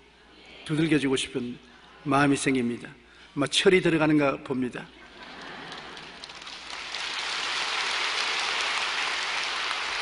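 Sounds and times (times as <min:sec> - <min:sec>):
large congregation applauding: 0:05.2 - 0:10.0.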